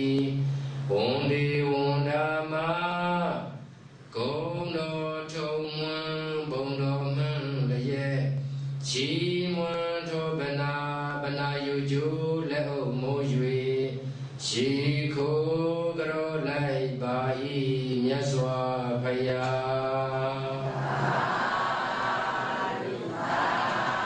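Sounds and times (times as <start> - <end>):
man chanting slowly: 0.0 - 22.3.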